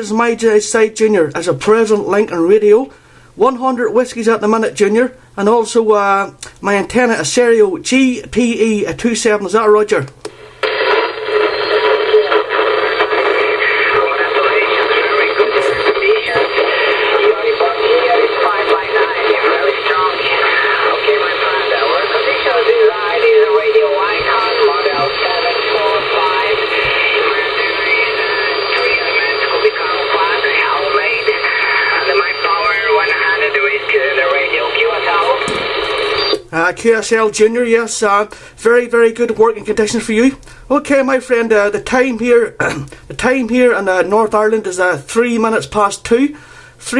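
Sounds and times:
radio whistling tones: 10.4 - 36.4
voice over shortwave radio: 10.6 - 36.4.

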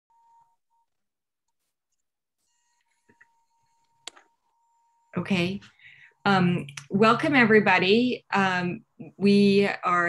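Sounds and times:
faint electronic beep tone: 0.1 - 1.0.

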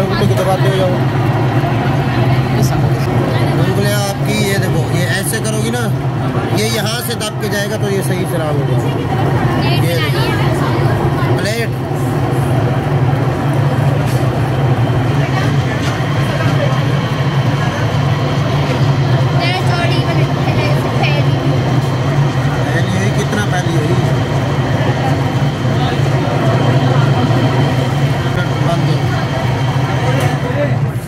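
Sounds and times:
potter's wheel motor hum: 0.0 - 31.0.

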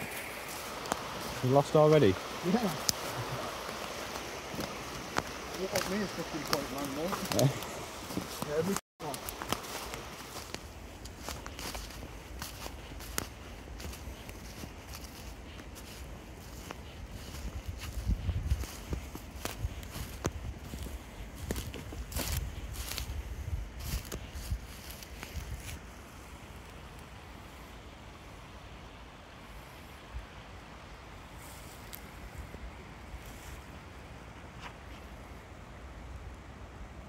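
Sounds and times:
footsteps on dry leaves: 0.0 - 25.9.

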